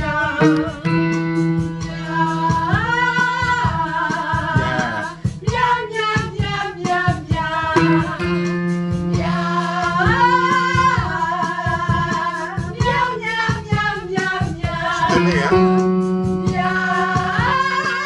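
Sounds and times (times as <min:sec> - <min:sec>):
backing music with steady beat: 0:00.0 - 0:18.0
man singing vocal exercises: 0:04.6 - 0:05.2, 0:15.1 - 0:15.7.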